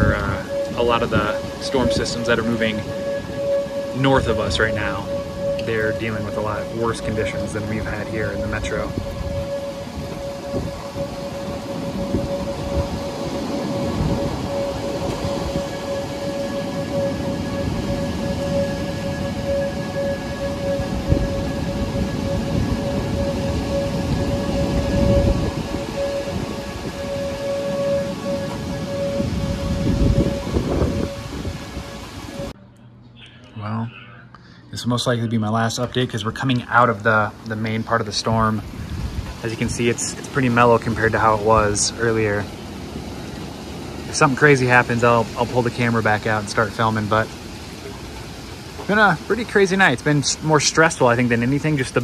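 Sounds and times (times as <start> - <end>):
steady heavy rain: 0.0 - 32.5, 36.3 - 52.0
warning siren held tone: 0.0 - 34.9, 35.5 - 52.0.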